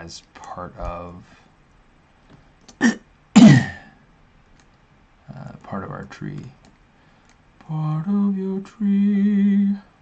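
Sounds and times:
man clearing his throat: 2.8s - 3.9s.

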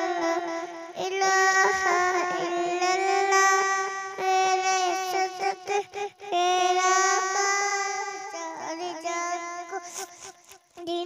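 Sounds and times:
girl singing into a microphone: 0.0s - 11.0s.

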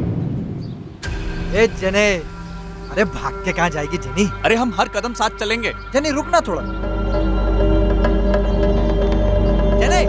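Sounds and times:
low rumble: 0.0s - 8.7s
rushing sound effect: 1.0s - 7.6s.

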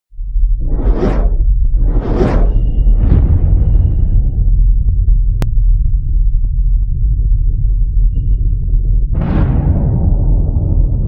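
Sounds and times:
deep steady rumble: 0.1s - 11.0s
whoosh: 0.5s - 5.0s.

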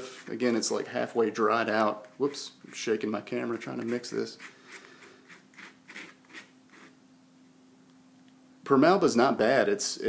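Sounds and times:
palette knife scraping paint: 3.8s - 7.0s.

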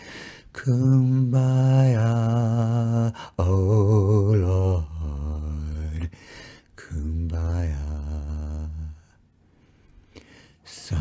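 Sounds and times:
man singing held notes: 0.5s - 6.2s.

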